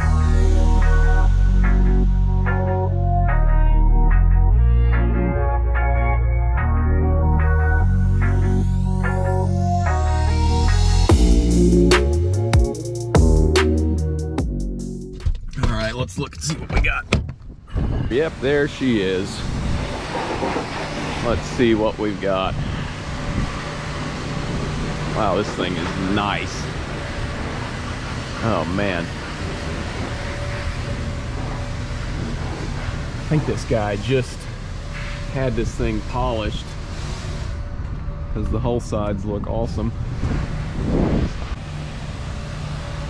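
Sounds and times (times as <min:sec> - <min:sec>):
background hum: 0:14.8 - 0:43.0
wind buffeting microphone: 0:17.2 - 0:25.9, 0:39.4 - 0:41.6
rushing noise: 0:17.7 - 0:43.0.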